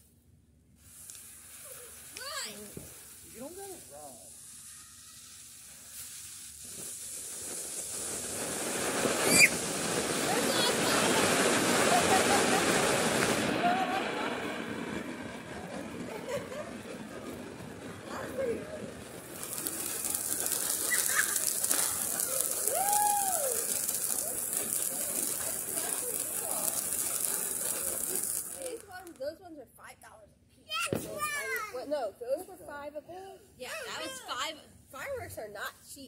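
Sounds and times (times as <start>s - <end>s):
firework hissing sparks: 0.7s - 29.4s, 30.7s - 32.7s, 33.5s - 36.0s
children's voices: 10.3s - 12.7s, 30.7s - 31.9s.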